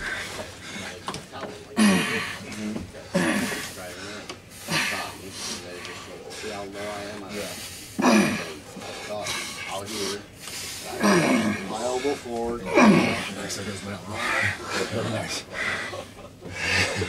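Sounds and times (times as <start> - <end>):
men shouting and grunting: 10.9 - 17.0.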